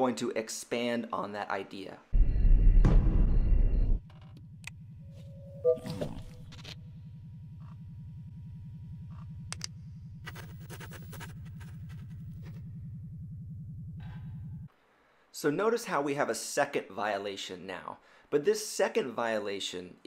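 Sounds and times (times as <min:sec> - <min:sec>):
low electrical hum: 0:03.9 - 0:15.4
short beep: 0:05.2 - 0:06.4.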